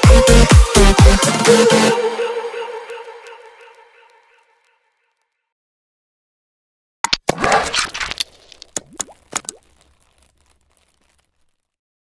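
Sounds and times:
pop sound effects: 7.0s - 9.8s.

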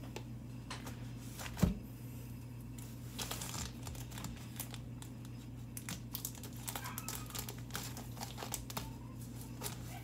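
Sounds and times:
package wrapping crinkling: 2.8s - 10.0s.

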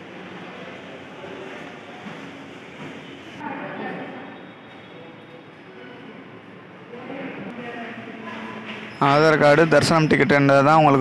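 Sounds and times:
hall background noise: 0.0s - 11.0s.

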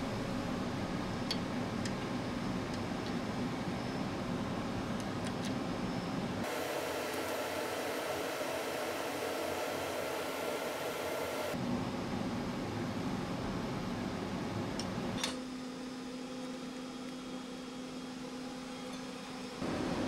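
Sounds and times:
projector cooling fans: 0.0s - 20.0s.

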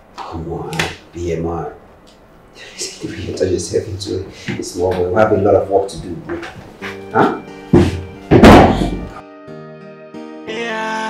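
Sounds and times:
soft background music: 3.1s - 11.0s
loud thunk: 7.8s - 9.2s.

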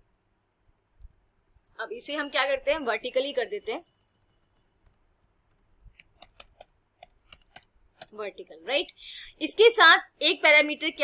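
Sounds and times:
keyboard key clicks: 3.9s - 8.2s.

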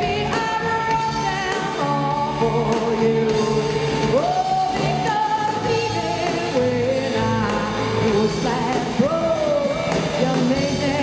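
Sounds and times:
drums with cymbal strokes: 0.0s - 11.0s
electric guitars: 0.0s - 11.0s
woman singing: 0.0s - 11.0s.

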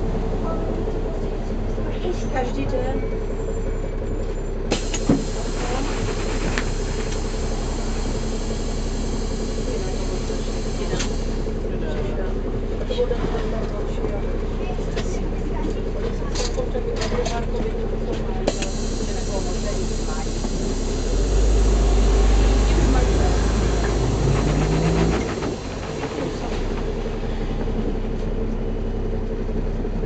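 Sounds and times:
bus diesel engine idling: 0.0s - 30.0s
voices: 0.3s - 3.2s, 5.2s - 27.4s.

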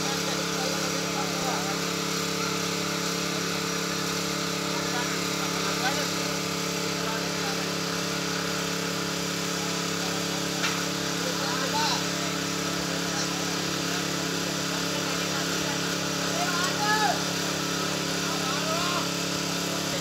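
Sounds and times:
steady mechanical drone: 0.0s - 20.0s.

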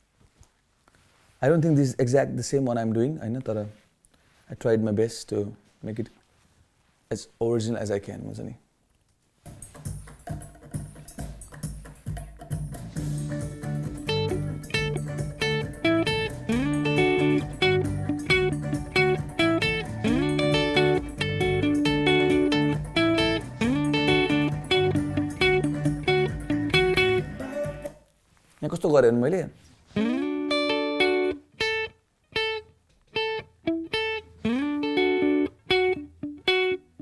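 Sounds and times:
electric guitar melody: 13.0s - 27.6s, 30.0s - 37.0s.

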